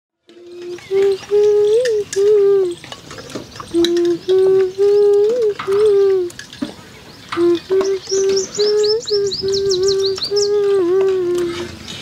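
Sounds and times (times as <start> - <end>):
low whistle-like notes: 0.3 - 2.8, 3.7 - 6.3, 7.4 - 11.7
birds chirping: 0.3 - 12.0.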